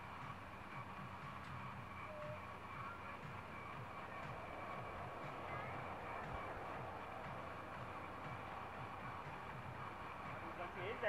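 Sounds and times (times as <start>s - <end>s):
distant electric train running: 0.0s - 11.0s
faint high hum: 0.0s - 11.0s.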